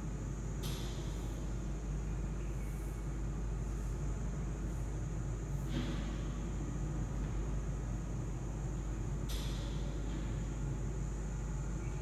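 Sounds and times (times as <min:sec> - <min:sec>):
low rumble and hiss: 0:00.0 - 0:12.0.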